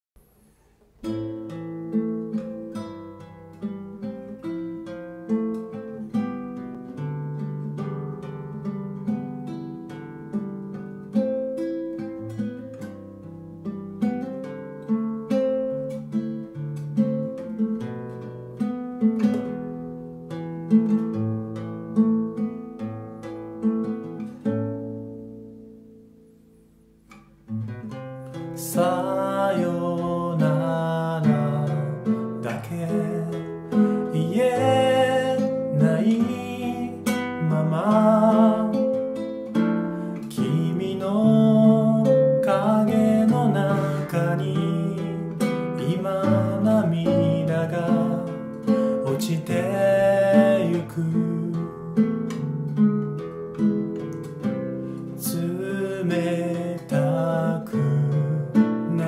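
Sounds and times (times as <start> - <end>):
fingerpicked classical guitar: 0.2 - 59.0.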